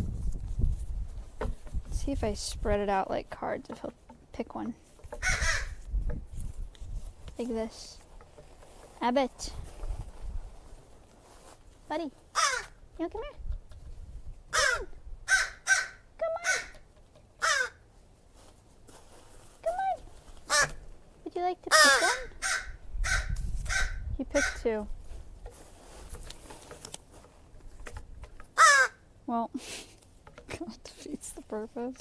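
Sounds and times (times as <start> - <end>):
crow calling and cawing: 5.1 - 5.8, 12.3 - 12.8, 14.5 - 17.9, 20.5 - 20.8, 21.7 - 24.7, 28.5 - 29.1.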